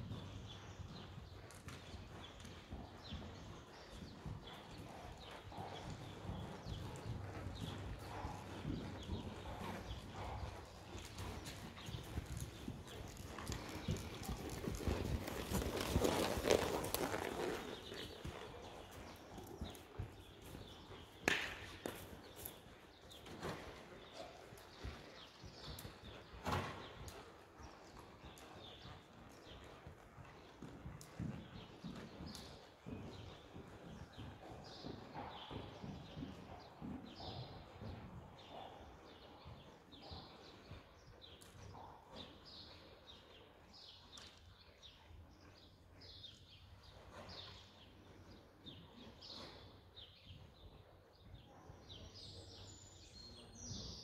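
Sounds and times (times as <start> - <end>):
horse hoofbeats on soft ground: 0.0 - 40.6.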